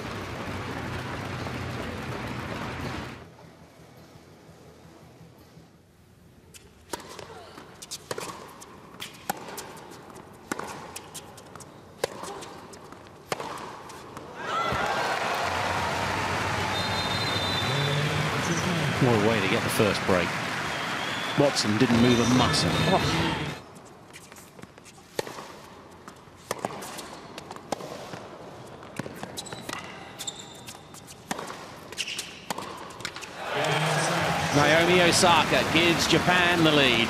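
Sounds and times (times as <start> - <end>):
tennis racquet hitting ball: 6.9 - 14.9, 25.1 - 28.3, 29.0 - 33.8
crowd cheering and applauding: 14.4 - 23.6, 33.3 - 37.0.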